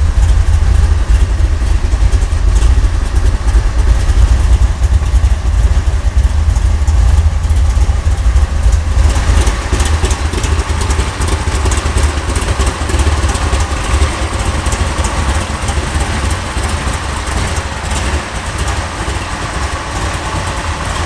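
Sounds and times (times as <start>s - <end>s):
vee eight engine idling: 0.0s - 21.0s.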